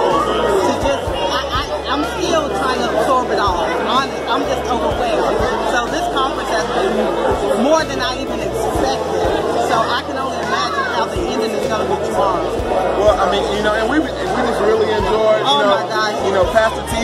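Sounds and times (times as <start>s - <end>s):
crowd chatter: 0.0s - 17.0s
people talking close: 0.0s - 17.0s.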